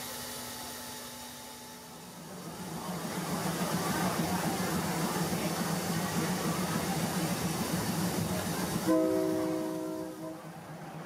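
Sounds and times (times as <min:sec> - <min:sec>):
steam locomotive hissing: 0:00.0 - 0:11.0.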